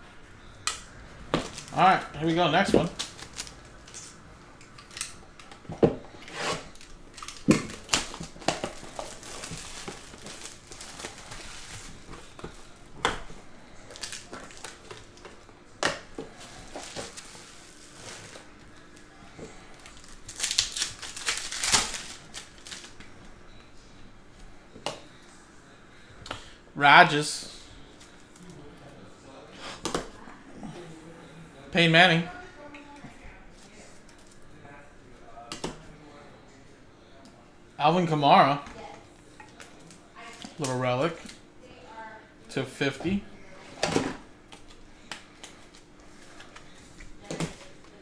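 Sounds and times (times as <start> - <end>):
plastic wrap crinkling: 1.4 - 4.2, 6.6 - 12.9, 13.7 - 15.4, 16.3 - 23.0.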